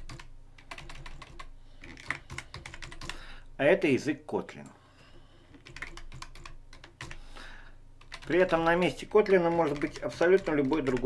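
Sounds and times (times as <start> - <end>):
keyboard typing clicks: 0.0 - 3.2, 5.5 - 7.2, 8.0 - 11.0.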